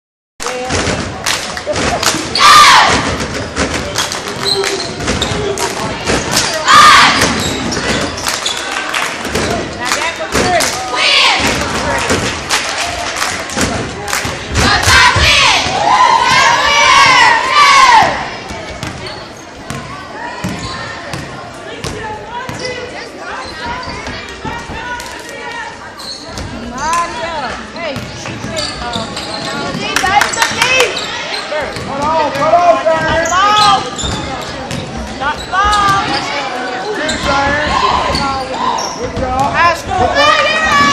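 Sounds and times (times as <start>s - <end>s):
people shouting: 2.3s - 3.2s, 6.6s - 7.4s, 14.6s - 18.3s, 39.9s - 40.9s.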